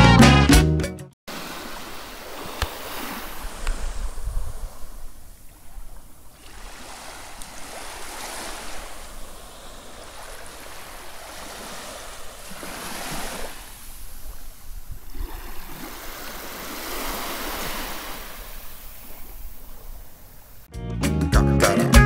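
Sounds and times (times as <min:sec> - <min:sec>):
gentle waves on sandy beach: 0:01.3 - 0:20.7.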